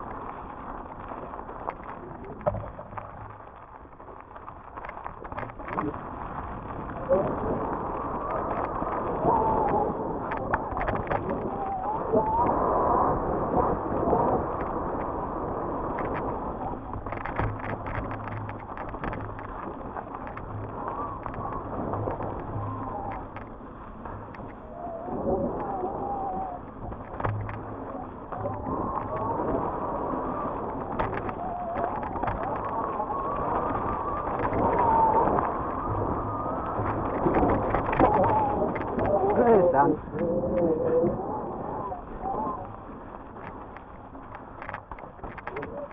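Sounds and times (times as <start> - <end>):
mountain bike tyre rush: 0.0 - 45.9
bike rattling over bumps: 13.2 - 24.8, 25.5 - 40.3.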